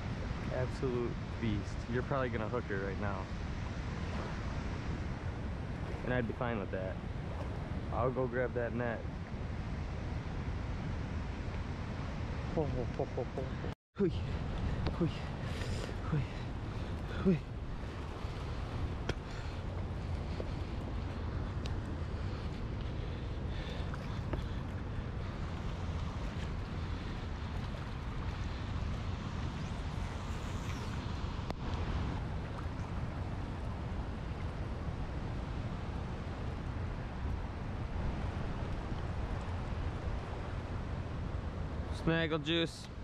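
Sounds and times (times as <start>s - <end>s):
wind rumbling on microphone: 0.0s - 43.0s
small waves lapping on rocks: 4.0s - 8.6s.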